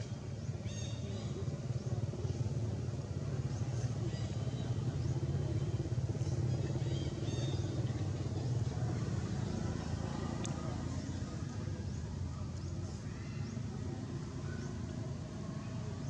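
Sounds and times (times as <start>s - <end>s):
vehicle engine running: 0.0s - 16.0s.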